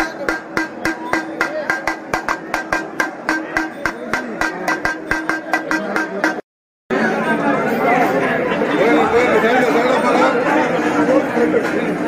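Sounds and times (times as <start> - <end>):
crowd hubbub: 0.0 - 12.0.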